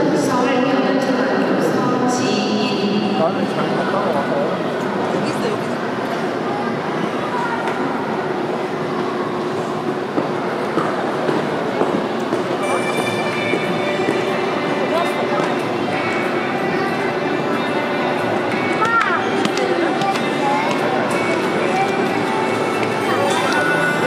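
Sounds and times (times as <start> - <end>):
spectators chattering: 0.0 - 24.0.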